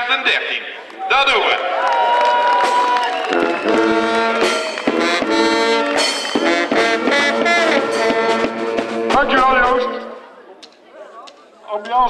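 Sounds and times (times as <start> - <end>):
brass band playing: 2.6 - 10.3.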